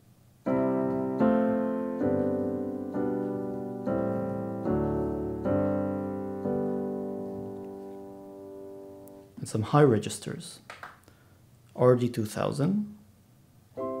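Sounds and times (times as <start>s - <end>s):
piano playing sustained chords: 0.4s - 9.4s, 13.8s - 14.0s.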